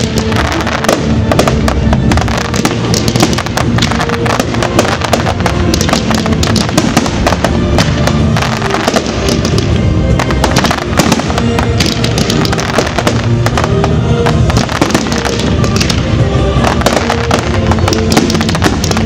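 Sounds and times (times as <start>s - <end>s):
fireworks bangs and crackles: 0.0s - 19.0s
music with long held notes: 0.0s - 19.0s.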